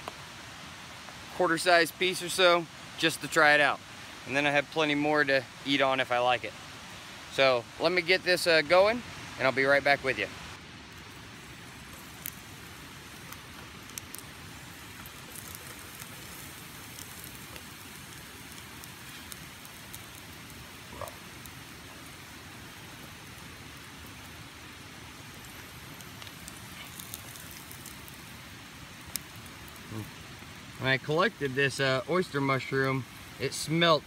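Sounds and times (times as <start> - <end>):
faint pops and crackles: 0.0 - 0.4, 8.8 - 33.7
butter sizzling: 5.8 - 34.0.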